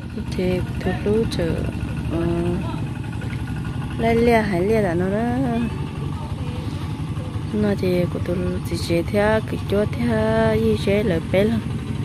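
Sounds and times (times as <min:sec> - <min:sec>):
hand tractor engine rumbling: 0:00.0 - 0:12.0.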